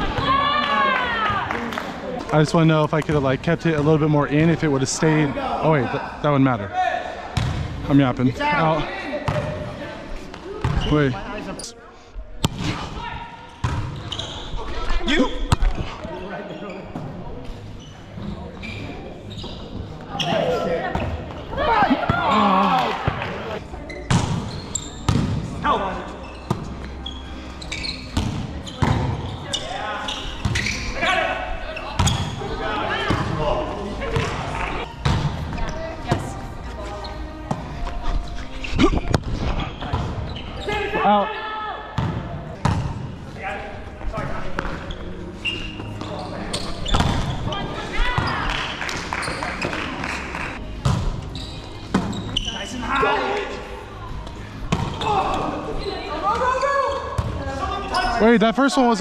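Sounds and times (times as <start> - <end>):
players calling out and talking: 0.0 - 48.6, 50.6 - 59.0.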